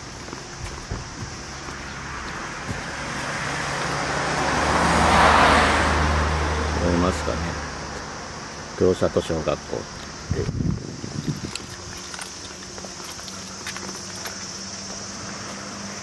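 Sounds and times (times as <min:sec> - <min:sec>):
car driving past: 0:01.5 - 0:08.7.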